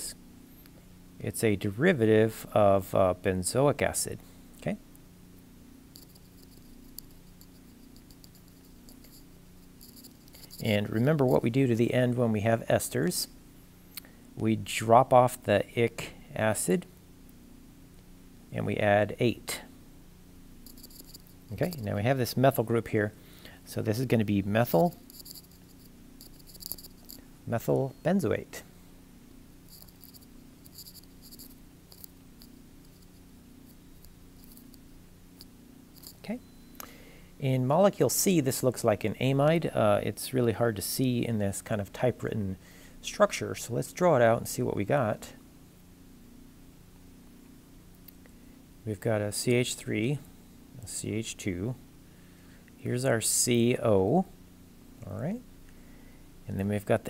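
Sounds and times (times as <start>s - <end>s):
steady low hum: 0.0s - 57.0s
stylus scratching on tablet screen: 6.0s - 11.4s, 20.7s - 21.9s, 24.7s - 27.2s, 29.7s - 33.8s, 34.4s - 34.8s.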